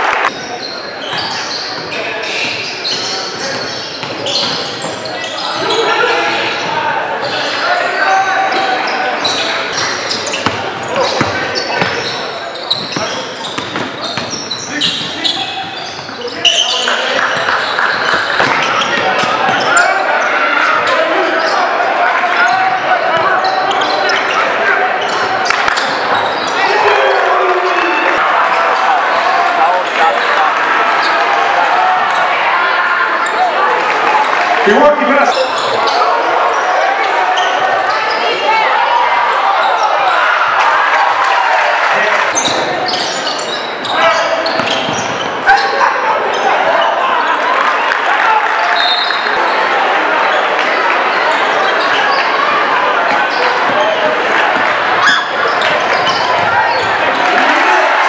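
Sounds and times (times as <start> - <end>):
echoing crowd voices: 0.0 - 58.0
basketball bouncing on wooden floor: 11.2 - 12.0.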